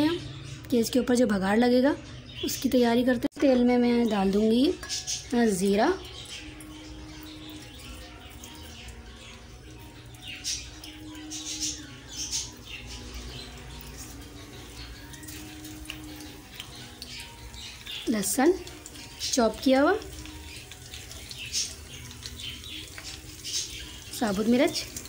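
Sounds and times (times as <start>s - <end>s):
seeds sizzling in hot oil: 4.4s - 25.0s.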